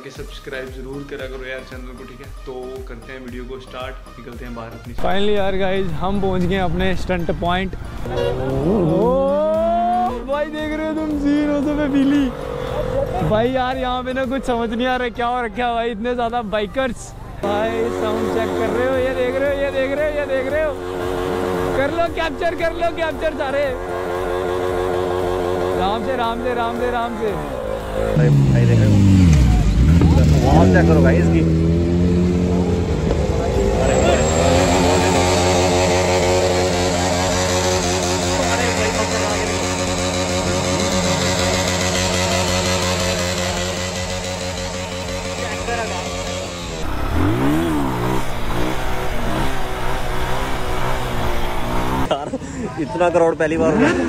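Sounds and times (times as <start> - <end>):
music: 0.0 - 35.1
motorcycle engine revving high: 5.0 - 14.7, 17.4 - 52.2
voices: 5.0 - 54.0.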